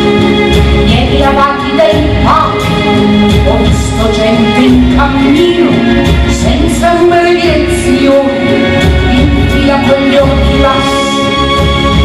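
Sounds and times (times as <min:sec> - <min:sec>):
live band playing: 0:00.0 - 0:12.0
woman singing: 0:00.9 - 0:11.2.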